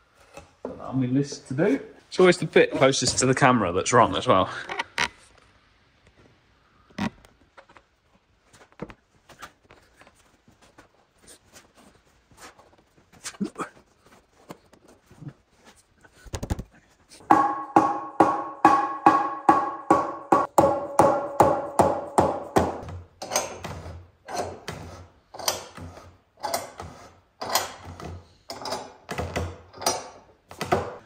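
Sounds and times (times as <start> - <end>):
mallet knocking wooden door frame: 17.3 - 22.8.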